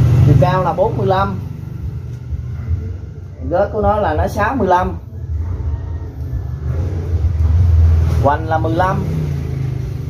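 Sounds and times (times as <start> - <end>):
motor vehicle rumble: 0.0 - 10.0.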